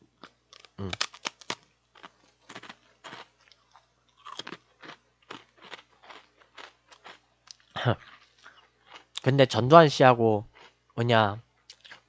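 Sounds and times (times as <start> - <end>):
faint crunching: 0.2 - 9.3.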